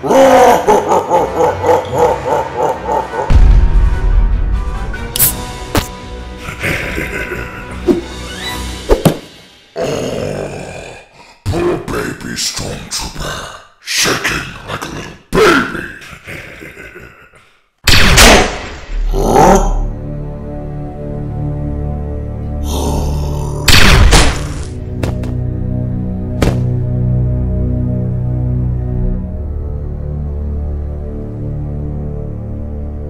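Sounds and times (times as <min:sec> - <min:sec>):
guttural snarling growls: 0:09.8 - 0:11.9, 0:19.1 - 0:19.9, 0:22.6 - 0:23.7.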